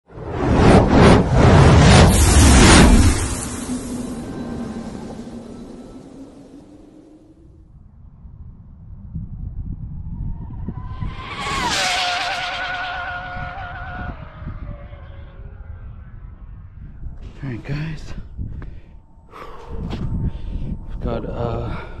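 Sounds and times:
wind rumble on microphone: 0:00.1 - 0:22.0
whoosh effect: 0:00.2 - 0:07.6
rc car motor whine passing: 0:02.1 - 0:07.6, 0:10.1 - 0:17.1.

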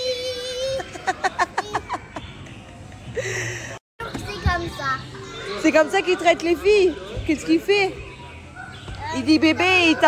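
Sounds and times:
children chattering and calling out: 0:00.0 - 0:02.4, 0:03.6 - 0:10.0.

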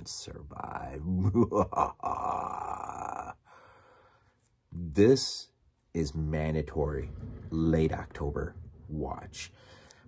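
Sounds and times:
man grunting: 0:01.2 - 0:03.4
man groaning breathily: 0:01.7 - 0:03.4.

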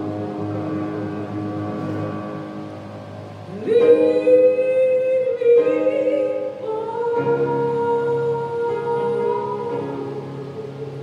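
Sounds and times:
organ sustained chord: 0:00.0 - 0:11.0.

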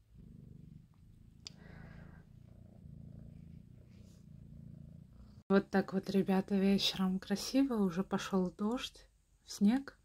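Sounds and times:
cat purring: 0:00.0 - 0:07.0.

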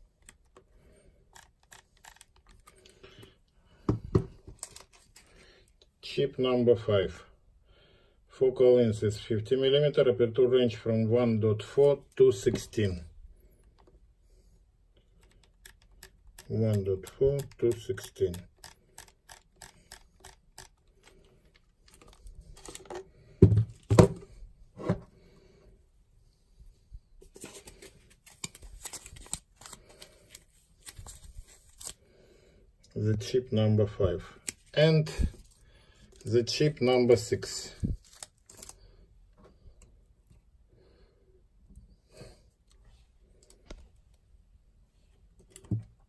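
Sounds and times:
camera clicks and handling: 0:01.3 - 0:02.8, 0:17.4 - 0:23.1
camera command dial clicking: 0:01.4 - 0:02.5, 0:15.3 - 0:20.8.

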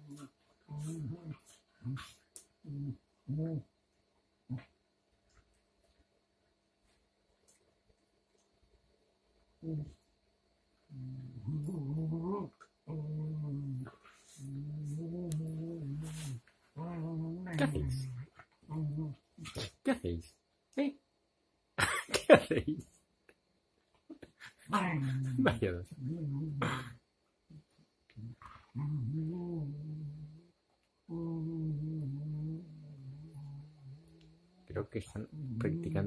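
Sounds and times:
dog play growling: 0:00.0 - 0:03.7, 0:09.6 - 0:10.0, 0:10.8 - 0:19.8, 0:24.4 - 0:36.0
dog snuffles: 0:16.0 - 0:16.4.

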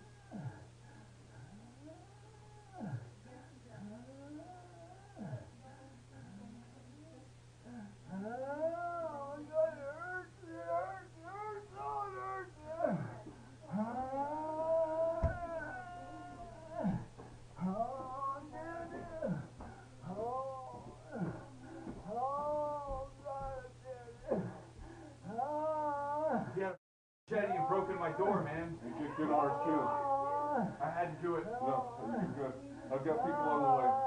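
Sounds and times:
man wailing in pain: 0:08.4 - 0:24.6, 0:25.3 - 0:26.6, 0:27.4 - 0:34.0.

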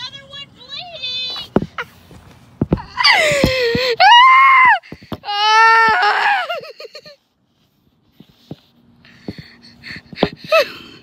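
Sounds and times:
girl screaming: 0:03.0 - 0:06.7.

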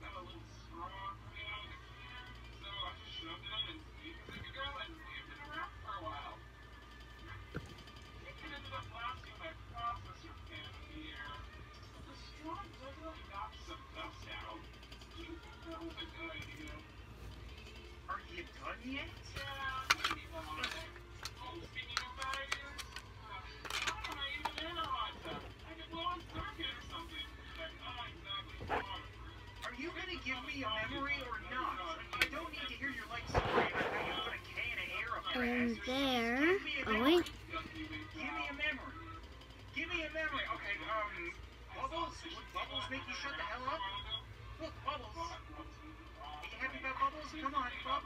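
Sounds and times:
background music: 0:14.6 - 0:37.7
speech from video: 0:35.3 - 0:37.3.

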